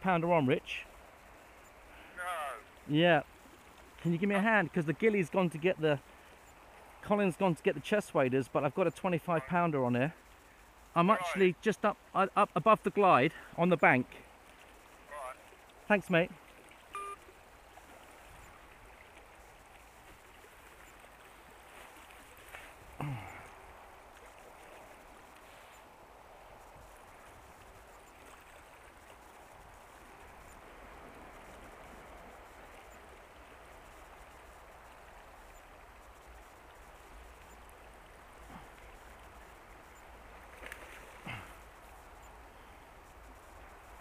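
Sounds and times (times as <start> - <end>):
river flowing: 0.0 - 44.0.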